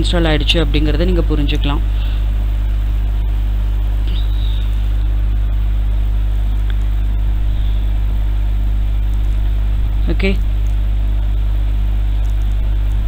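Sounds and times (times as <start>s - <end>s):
constant hiss: 0.0s - 13.0s
steady low hum: 0.0s - 13.0s.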